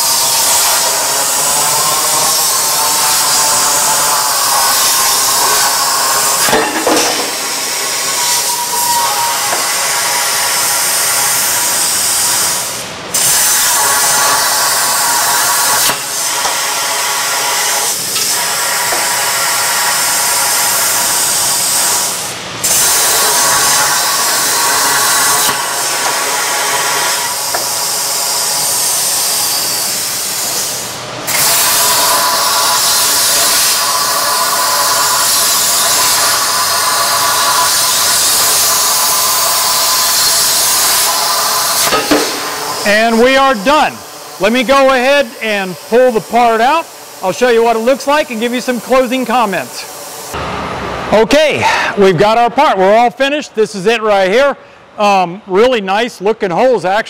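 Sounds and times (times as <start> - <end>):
plasma torch cutting steel: 0.0 - 50.4.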